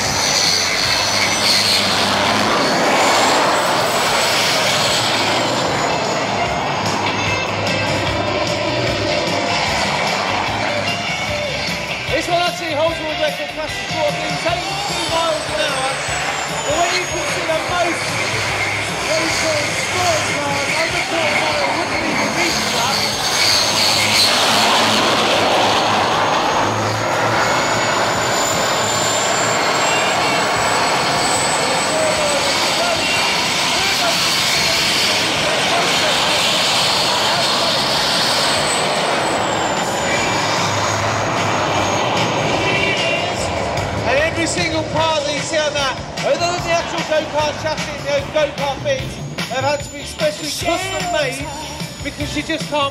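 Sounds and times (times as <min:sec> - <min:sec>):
rushing exhaust blast: 0:00.0 - 0:52.2
high turbine whine: 0:00.0 - 0:52.9.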